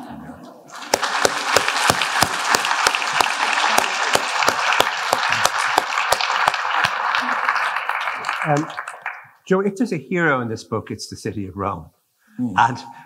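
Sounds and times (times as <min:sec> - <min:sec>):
audience applauding: 0:00.7 - 0:09.4.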